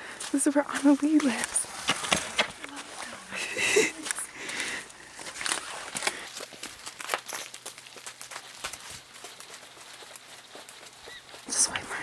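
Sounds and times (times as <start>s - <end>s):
footsteps on snow and paving: 0.0s - 12.0s.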